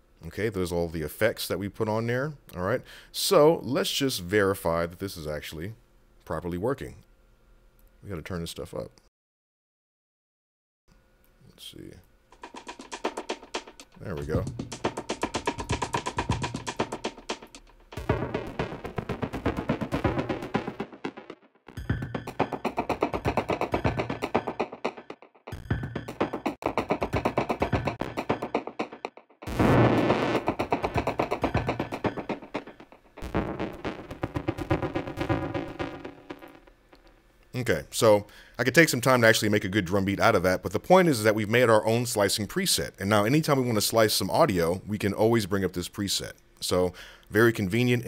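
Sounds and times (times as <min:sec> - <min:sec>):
processed drum hits: 0:12.4 - 0:37.2.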